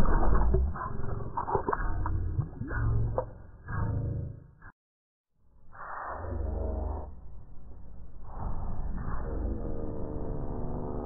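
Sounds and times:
muffled bass-heavy cartoon music: 0.0 - 4.7.

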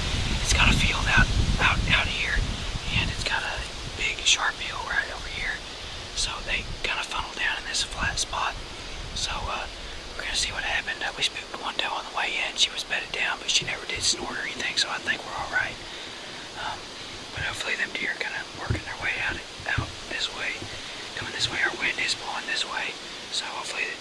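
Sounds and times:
man whispering: 0.4 - 24.0.

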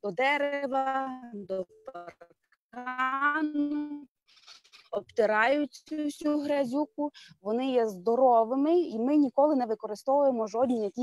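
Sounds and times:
woman speaking: 0.0 - 4.1, 5.0 - 11.0.

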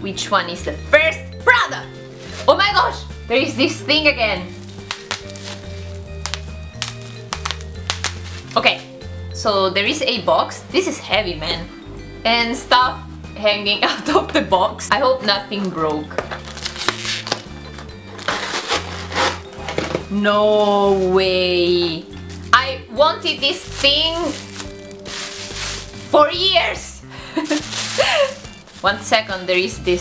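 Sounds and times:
packaging crinkling and tearing: 4.5 - 8.6, 16.4 - 17.5, 18.1 - 19.8, 23.5 - 26.1, 27.4 - 29.5
bubble wrap popping: 4.5 - 9.0, 15.6 - 17.6, 18.2 - 20.0, 20.6 - 26.2, 27.4 - 30.0.

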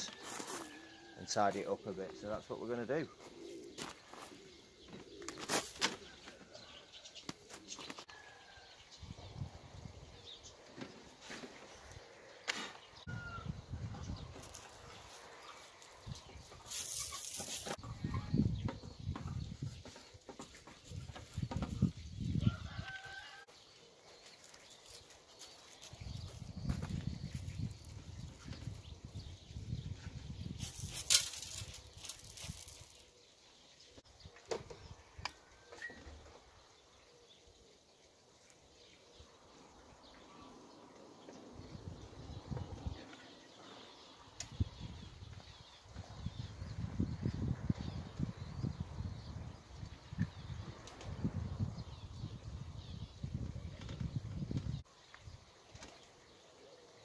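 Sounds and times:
wind gusts on microphone: 8.6 - 10.4, 13.0 - 15.1, 17.8 - 19.8, 20.9 - 23.4, 25.9 - 32.8, 41.5 - 43.1, 44.4 - 54.8.

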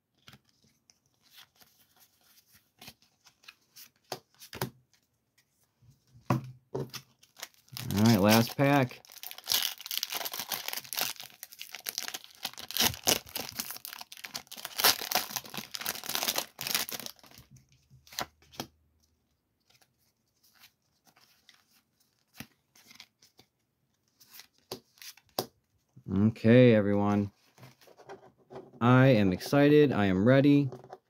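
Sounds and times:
foil wrapper tearing and crinkling: 7.3 - 17.4.

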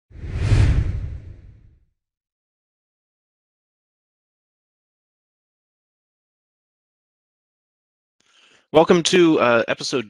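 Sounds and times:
whoosh with low rumble: 0.1 - 1.8.

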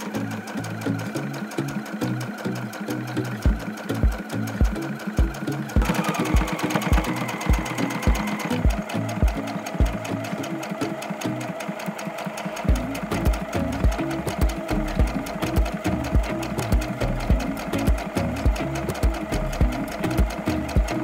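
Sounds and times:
background music with steady beat: 0.0 - 21.0
sewing machine stitching: 0.0 - 21.0.

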